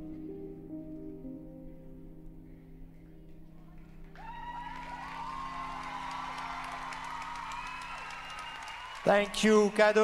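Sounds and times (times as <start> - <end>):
audience applause and cheering: 4.0 - 10.0.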